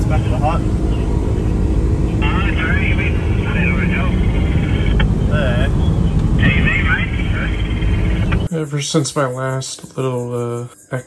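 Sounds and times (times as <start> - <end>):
helicopter low rumble: 0.0 - 8.5
indistinct voices: 0.0 - 11.0.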